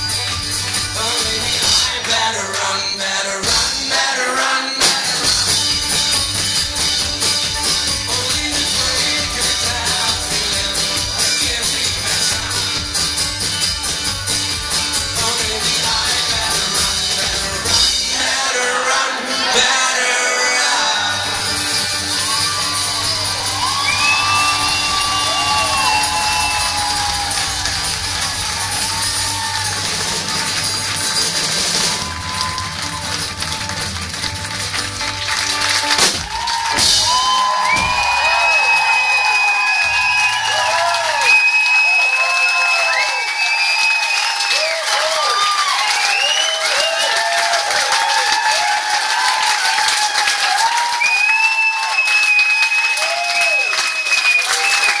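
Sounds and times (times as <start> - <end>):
bluegrass band playing: 0.0 - 39.2
crowd cheering and applauding: 0.0 - 55.0
high whistles: 22.0 - 27.5, 37.1 - 44.6, 45.2 - 47.2, 50.9 - 55.0.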